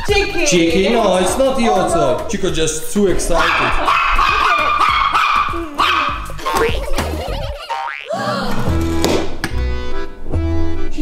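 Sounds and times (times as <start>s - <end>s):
upbeat background music: 0.0s - 11.0s
rising cartoon sound effect: 6.3s - 8.7s.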